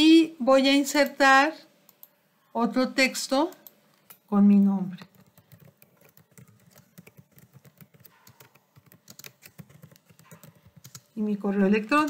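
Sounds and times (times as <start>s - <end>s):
faint keyboard typing: 1.8s - 2.2s, 3.4s - 12.0s.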